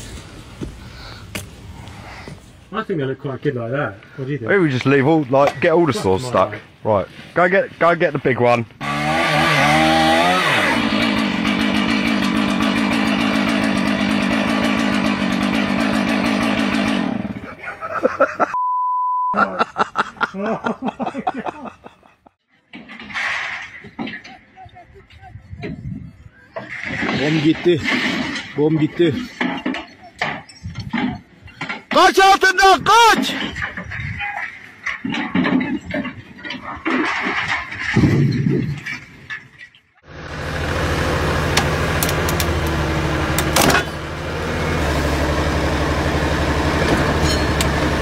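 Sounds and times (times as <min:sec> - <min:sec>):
chainsaw running at high revs: 0:08.8 - 0:17.5
censor bleep: 0:18.6 - 0:19.4
metal tower collapsing with clanks: 0:26.6 - 0:32.2, 0:33.0 - 0:39.9.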